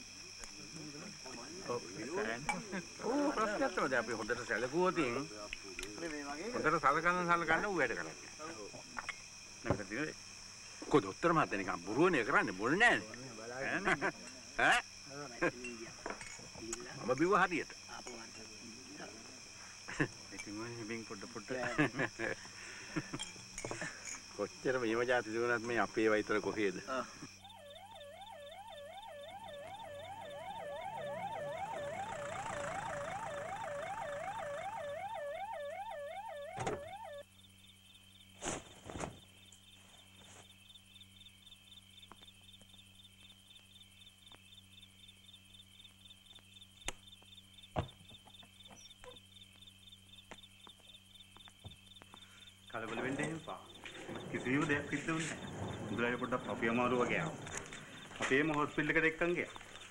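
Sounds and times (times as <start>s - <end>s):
crickets chirping: 0.0s - 59.9s
ambulance siren warbling: 27.4s - 37.2s.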